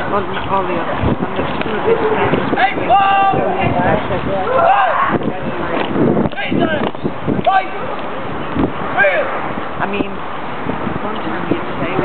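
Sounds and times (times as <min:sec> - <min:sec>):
marching shoes striking road: 0:00.0 - 0:03.4, 0:04.5 - 0:09.8.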